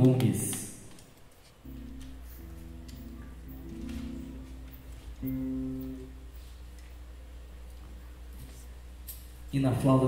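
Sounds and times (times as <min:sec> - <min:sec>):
low acoustic guitar note: 0:01.7 - 0:06.6.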